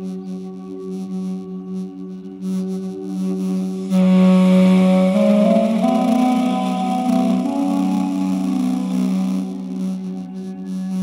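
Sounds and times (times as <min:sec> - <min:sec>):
steady drone: 0:03.7 - 0:11.0
duduk melody: 0:03.9 - 0:10.2.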